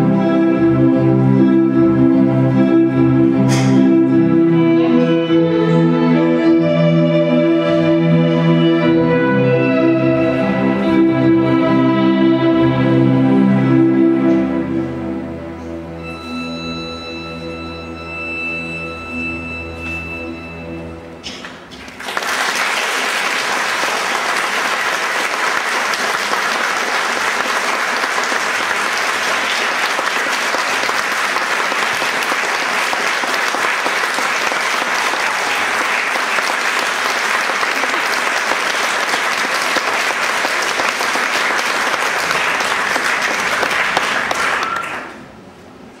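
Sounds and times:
audience applauding: 21.8s - 45.2s.

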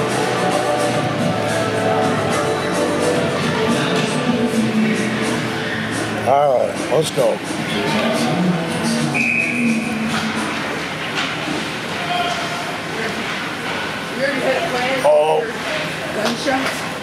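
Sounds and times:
spectators hubbub: 0.0s - 17.0s.

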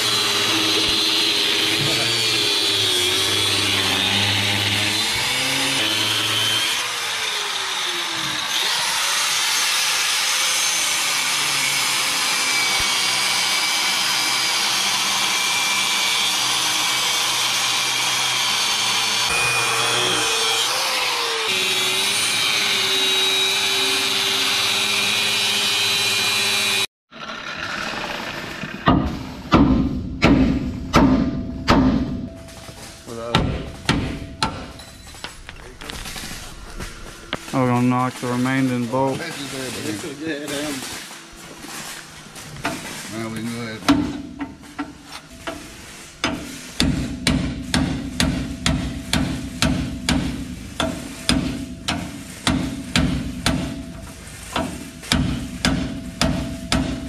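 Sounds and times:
angle grinder cutting steel: 0.0s - 29.4s, 36.5s - 43.8s.

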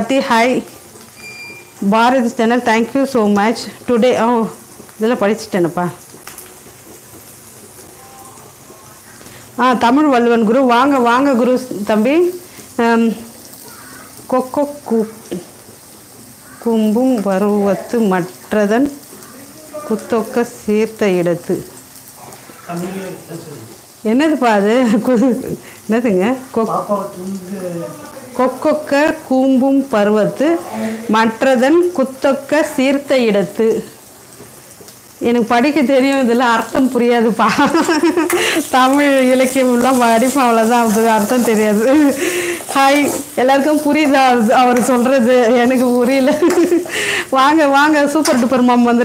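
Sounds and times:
woman talking: 0.0s - 0.7s, 1.8s - 6.0s, 9.6s - 13.3s, 14.3s - 15.5s, 16.6s - 19.0s, 19.8s - 21.7s, 24.0s - 26.6s, 27.8s - 33.9s, 35.2s - 49.0s
vegetables sizzling in oil: 0.0s - 49.0s
person speaking: 22.6s - 23.7s, 26.6s - 28.9s, 30.4s - 31.3s.

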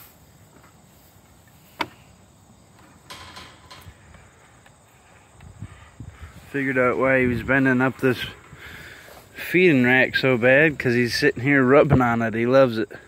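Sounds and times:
faint insect chirring: 0.0s - 13.0s.

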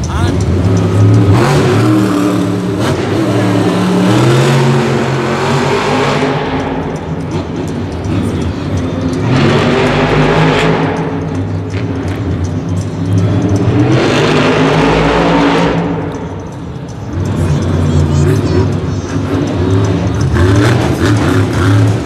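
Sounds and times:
monster truck engine revving: 0.0s - 22.0s.

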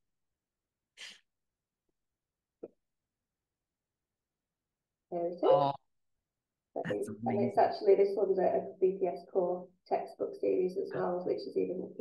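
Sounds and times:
short puff of noise: 1.0s - 1.2s.

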